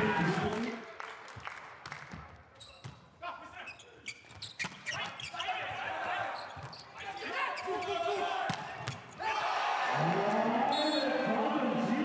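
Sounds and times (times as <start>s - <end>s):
players shouting calls: 5.1s - 12.0s.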